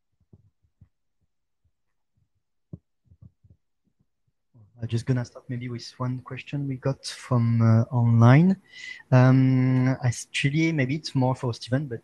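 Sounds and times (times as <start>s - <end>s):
microphone handling thumps: 2.2s - 4.4s
man speaking: 4.8s - 12.0s.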